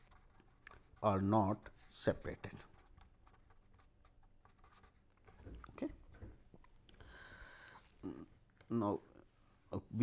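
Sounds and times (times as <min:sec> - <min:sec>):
pen writing on paper: 0:00.0 - 0:01.0, 0:02.5 - 0:05.2.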